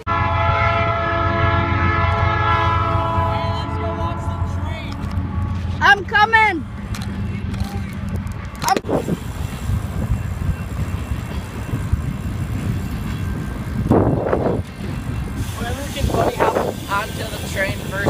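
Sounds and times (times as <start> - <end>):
voices: 2.9 - 8.9, 15.4 - 18.0
wind on microphone: 7.8 - 18.0.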